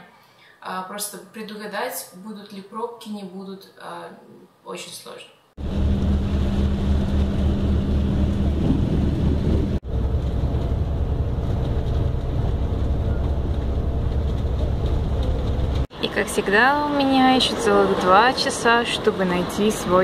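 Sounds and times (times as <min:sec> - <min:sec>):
bus engine rumble: 0:05.6 - 0:16.2
road noise: 0:05.6 - 0:20.0.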